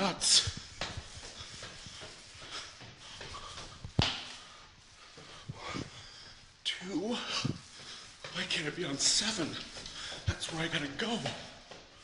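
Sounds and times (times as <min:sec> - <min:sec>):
footsteps on stairs: 0:00.0 - 0:12.0
man breathing hard: 0:00.3 - 0:08.3, 0:09.7 - 0:10.3.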